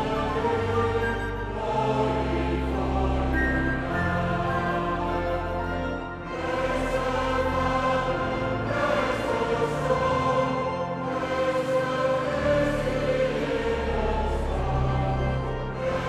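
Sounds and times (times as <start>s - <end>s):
congregation singing a hymn: 0.0s - 16.0s.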